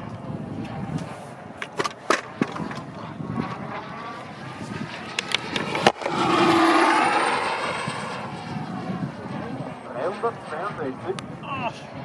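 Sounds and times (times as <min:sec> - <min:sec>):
electric ducted fan rushing: 0:00.0 - 0:11.4
high whine dropping in pitch: 0:02.3 - 0:10.6.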